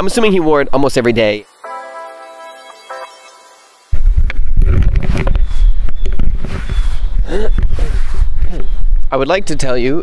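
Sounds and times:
handheld microphone rumbling: 4.0s - 9.0s.

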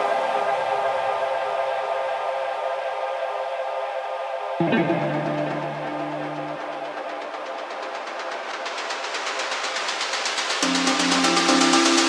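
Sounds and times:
held synthesizer chord: 4.6s - 7.8s.

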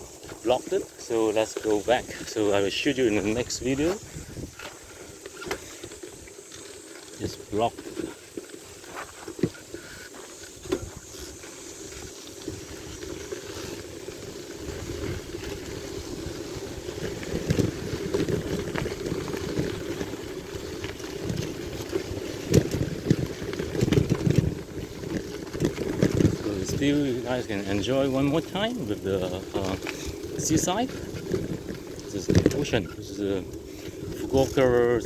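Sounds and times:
bicycle rumbling on rough path: 0.0s - 35.0s
wind buffeting microphone: 1.8s - 5.2s.

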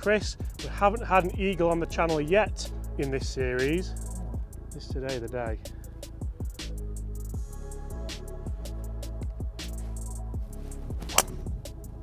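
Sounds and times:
background music with drum beat: 0.0s - 12.0s
golf club striking ball: 10.9s - 11.8s.

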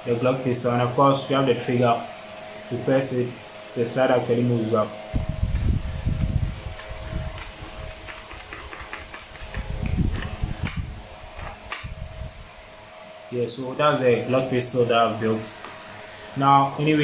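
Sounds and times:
faint steady hum: 0.0s - 17.0s
low rumbling: 5.0s - 8.1s, 9.4s - 12.8s.

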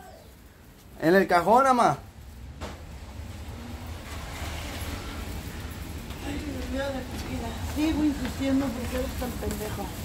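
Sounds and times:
rain hissing: 0.0s - 10.0s
wet street traffic: 0.0s - 10.0s.

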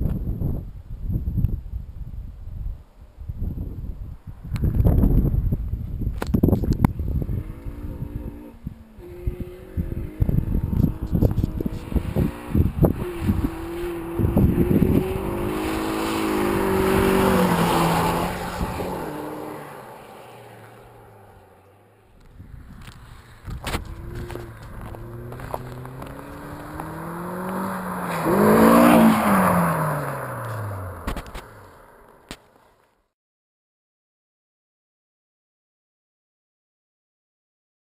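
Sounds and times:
wind rumble on microphone: 0.0s - 19.7s, 22.1s - 31.6s
car accelerating past: 7.0s - 32.3s.

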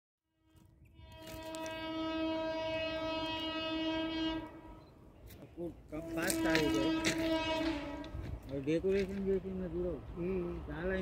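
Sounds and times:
locomotive air horn blast: 0.3s - 8.6s.

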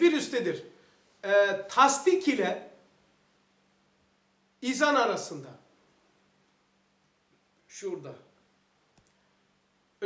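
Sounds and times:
man speaking: 0.0s - 2.8s, 4.6s - 5.7s, 7.7s - 8.4s
faint click: 8.9s - 9.2s.

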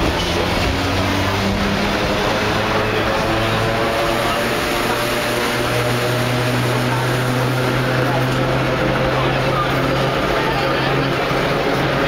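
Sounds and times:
subway car running noise: 0.0s - 12.0s.

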